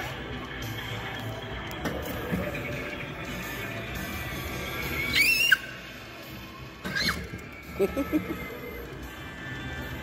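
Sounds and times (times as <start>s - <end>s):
kiddie ride music: 0.0s - 10.0s.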